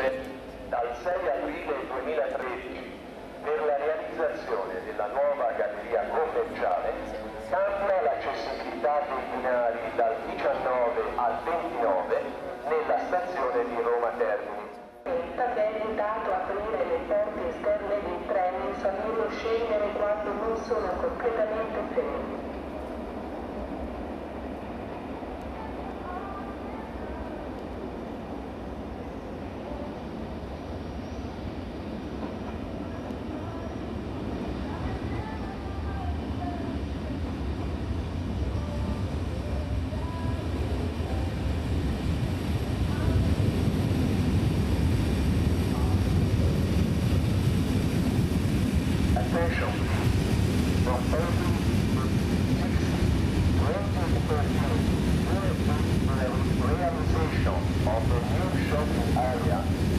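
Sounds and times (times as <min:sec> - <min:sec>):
passenger train passing: 0:00.0 - 0:59.9.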